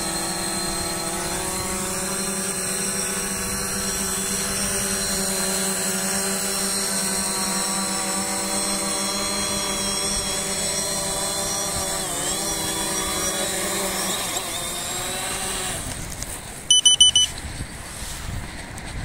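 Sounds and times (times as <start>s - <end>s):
drone propellers whirring: 0.0s - 19.0s
short electronic beeps: 16.7s - 17.4s.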